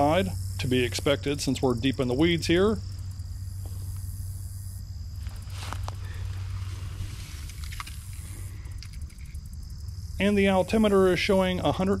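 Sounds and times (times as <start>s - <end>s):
insects buzzing: 0.0s - 12.0s
low steady rumble: 0.0s - 12.0s
dry weeds rustling: 2.1s - 10.0s.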